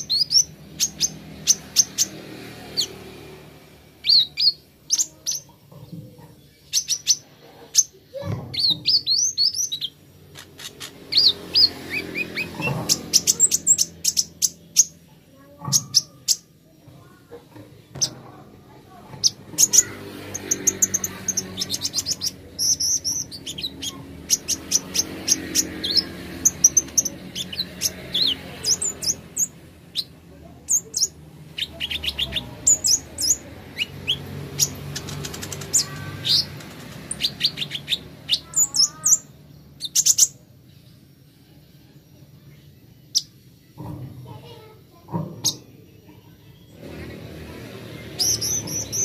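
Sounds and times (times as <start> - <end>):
sunbird chirping and trilling: 0.0 - 49.0.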